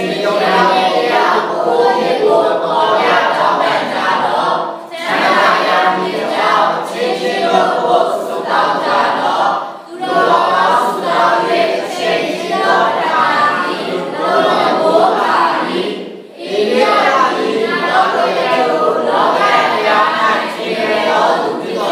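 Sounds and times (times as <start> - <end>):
congregation voices in unison: 0.0 - 21.9.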